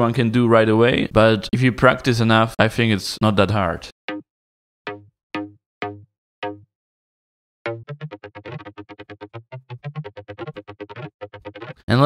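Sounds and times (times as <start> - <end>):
clicky synth bass notes: 4.9 - 6.7, 7.7 - 11.8.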